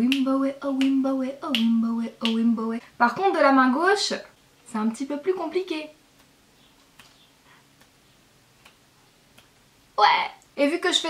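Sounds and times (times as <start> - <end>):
faint finger-snap clicks: 6.2 - 7.2, 8.6 - 9.6.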